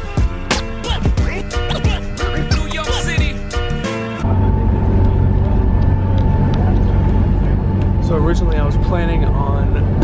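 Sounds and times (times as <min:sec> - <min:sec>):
ferry engines low drone: 0:01.2 - 0:10.0.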